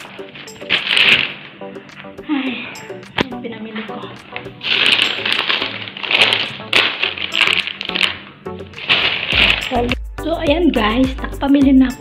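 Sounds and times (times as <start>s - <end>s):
plastic bags rustling: 0.0s - 10.0s.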